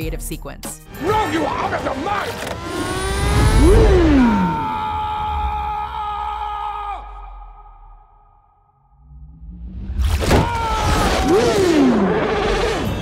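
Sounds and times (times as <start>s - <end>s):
low rising tone: 2.4s - 4.8s, 7.2s - 10.3s
descending whoosh: 2.5s - 5.9s.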